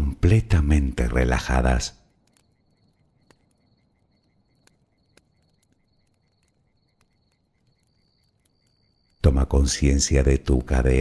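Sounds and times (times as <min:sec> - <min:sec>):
campfire wood crackles: 0:00.0 - 0:11.0
crickets chirping: 0:00.0 - 0:11.0.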